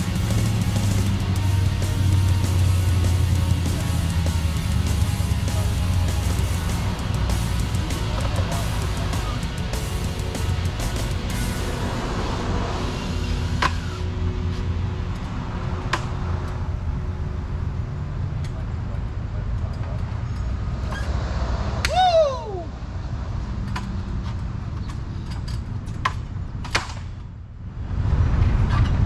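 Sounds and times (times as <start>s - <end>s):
low outdoor rumble: 0.0s - 29.0s
short falling voice-like call: 21.8s - 22.8s.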